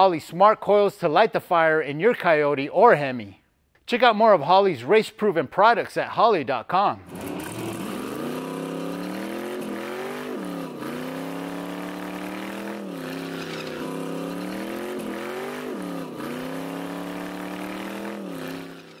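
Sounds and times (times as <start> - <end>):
car engine revving hard: 7.1 - 19.0.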